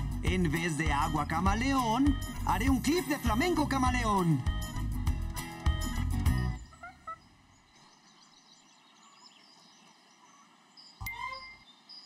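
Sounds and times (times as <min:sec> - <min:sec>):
faint bird calls: 0:06.6 - 0:12.0.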